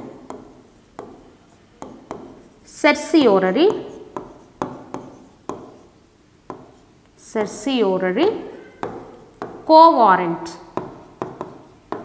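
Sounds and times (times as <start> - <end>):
pen tapping on writing board: 0.0 - 2.5, 3.6 - 5.9, 6.5 - 6.8, 8.8 - 9.7, 10.7 - 12.0.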